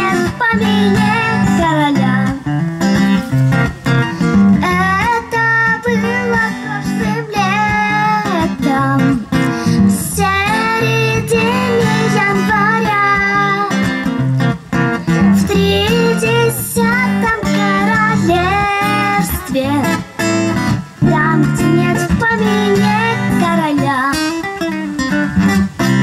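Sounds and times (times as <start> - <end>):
girl singing into a microphone: 0.0 - 3.2, 4.1 - 14.1, 14.9 - 24.7
strummed acoustic guitar: 0.0 - 26.0.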